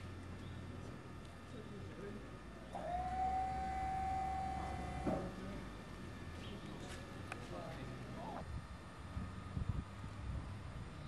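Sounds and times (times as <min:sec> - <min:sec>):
electric pump whine: 0:00.0 - 0:11.0.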